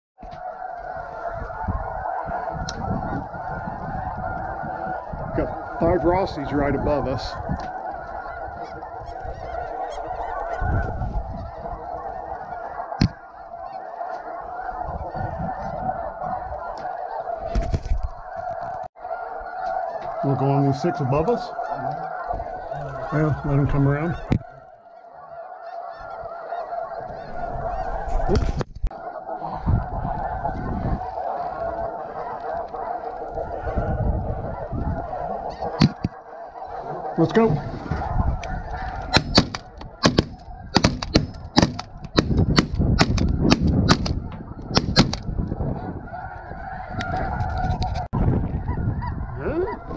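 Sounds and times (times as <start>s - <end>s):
geese honking: 0.2s - 49.9s
wind rumble on microphone: 1.0s - 12.2s, 14.8s - 16.7s, 29.5s - 32.2s, 33.2s - 36.1s, 37.6s - 49.9s
sharp crack: 39.2s - 44.2s, 44.8s - 45.3s.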